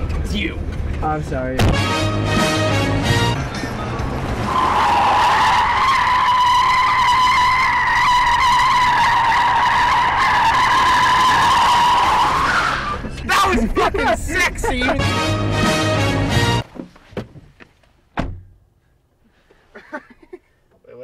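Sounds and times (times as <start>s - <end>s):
car tyres squealing on asphalt: 4.1s - 13.5s.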